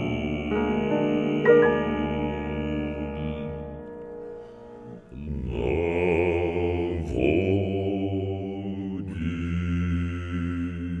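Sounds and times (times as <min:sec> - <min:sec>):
deep vocal trio singing: 0:00.0 - 0:04.2, 0:04.9 - 0:11.0.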